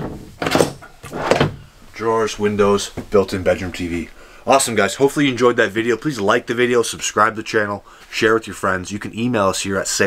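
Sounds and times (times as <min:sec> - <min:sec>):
drawer sliding and knocking: 0:00.0 - 0:01.7.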